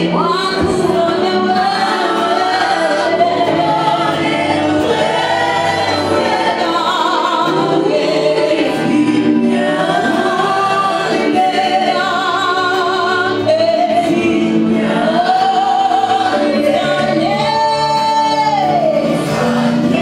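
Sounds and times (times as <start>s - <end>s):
band playing: 0.0s - 20.0s
group of backing singers: 0.0s - 20.0s
woman singing with vibrato: 0.0s - 20.0s.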